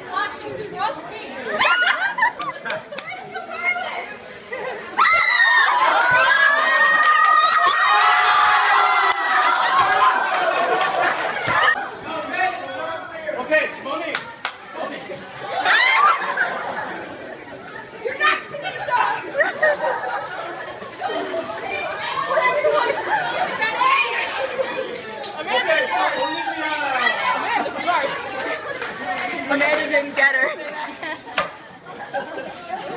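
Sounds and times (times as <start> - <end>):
people chattering: 0.0 - 32.9
people talking and calling out: 0.0 - 32.9.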